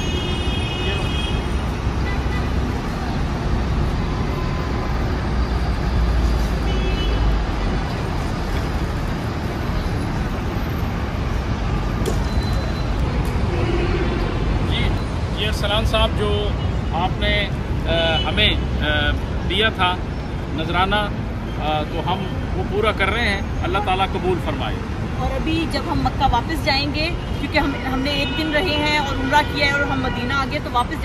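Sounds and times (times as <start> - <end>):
road traffic rumble: 0.0 - 31.0.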